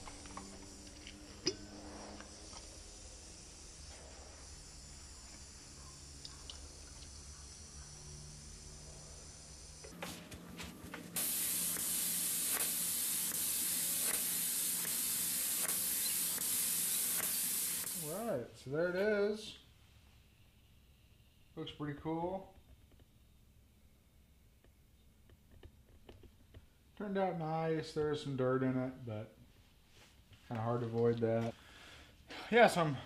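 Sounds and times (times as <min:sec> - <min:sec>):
spray gun hissing: 0:00.0 - 0:10.0, 0:11.1 - 0:18.4
faint low hum: 0:00.0 - 0:10.3.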